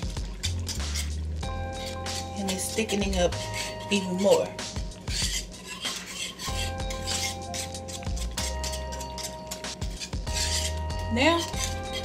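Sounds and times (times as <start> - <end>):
whisk scraping metal saucepan: 0.0 - 12.0.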